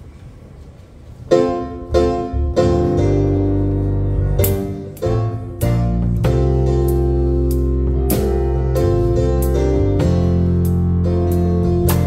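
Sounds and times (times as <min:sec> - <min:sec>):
band playing struck chords: 0:01.3 - 0:12.0
low bass note: 0:01.9 - 0:12.0.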